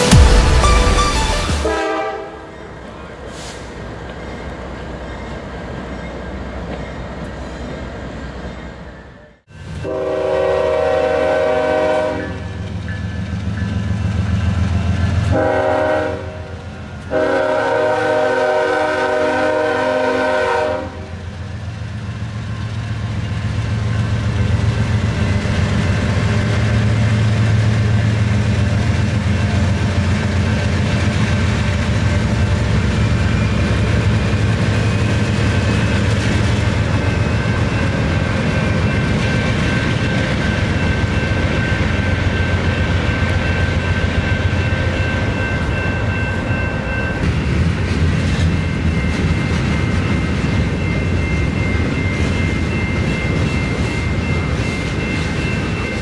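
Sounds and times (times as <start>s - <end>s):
locomotive horn blasts: 0.0s - 2.5s, 9.8s - 12.6s, 15.3s - 21.2s
freight train rumbling and clattering: 0.0s - 56.0s.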